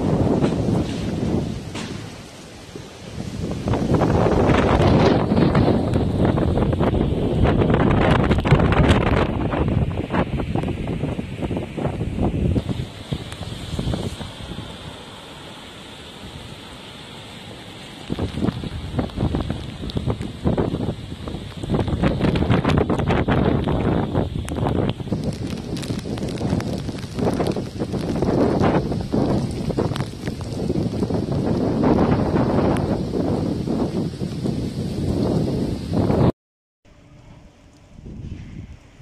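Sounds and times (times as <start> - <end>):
gusty wind buffeting microphone: 0.0 - 36.3, 36.9 - 39.0.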